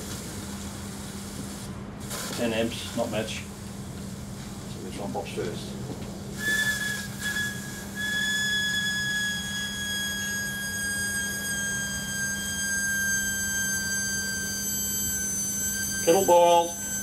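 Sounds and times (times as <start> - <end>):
low electrical hum: 0.0 - 17.0
battery venting high whistle: 6.3 - 17.0.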